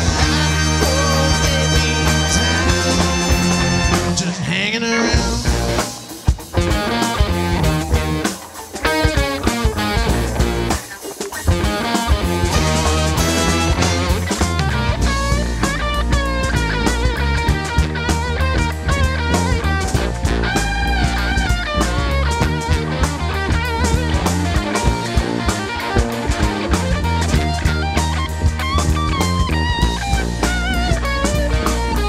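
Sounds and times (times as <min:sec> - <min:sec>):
electric guitar lead: 0:00.0 - 0:32.0
funk band playing: 0:00.0 - 0:32.0.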